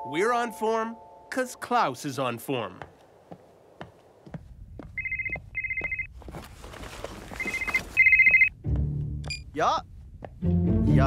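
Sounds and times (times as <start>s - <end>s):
mobile phone ringing: 5.0s - 6.1s, 7.4s - 8.5s.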